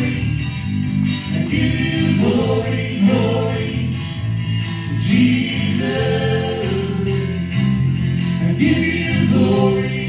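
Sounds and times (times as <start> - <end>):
acoustic and electric guitars: 0.0 - 10.0
men and women singing together: 1.3 - 4.0, 4.9 - 7.5, 8.4 - 10.0.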